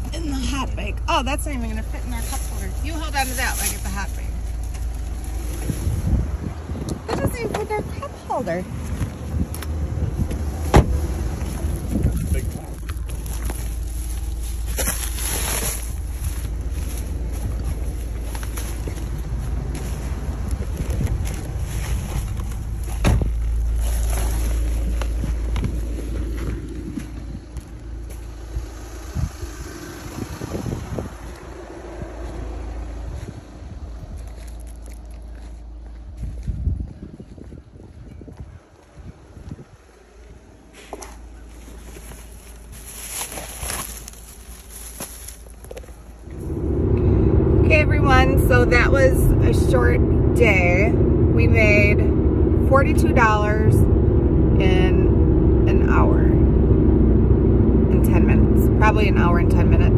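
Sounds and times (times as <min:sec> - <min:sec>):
low road rumble: 0:00.0 - 0:59.9
wind noise in car cabin: 0:00.0 - 0:59.9.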